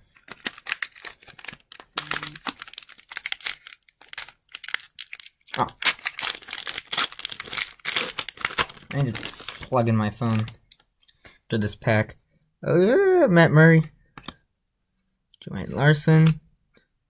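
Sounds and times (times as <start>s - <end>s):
plastic wrapper tearing and crinkling: 0.0s - 10.8s.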